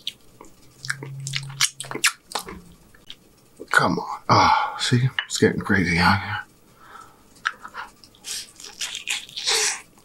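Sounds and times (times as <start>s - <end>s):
wet chewing and lip smacking: 0.0s - 3.2s, 7.4s - 10.0s
low steady hum: 0.0s - 10.0s.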